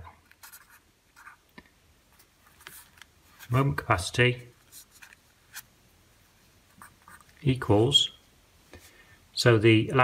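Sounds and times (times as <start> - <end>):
pen scratching on paper: 0.4 - 1.4.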